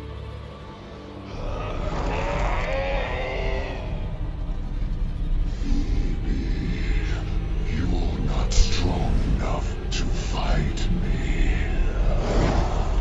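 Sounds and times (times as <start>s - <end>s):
dramatic music: 0.0s - 13.0s
low rumble: 0.0s - 13.0s.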